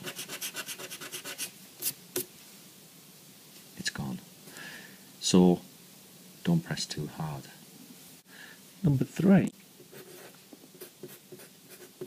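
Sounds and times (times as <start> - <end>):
eraser rubbing on paper: 0.0 - 2.0, 9.9 - 12.0.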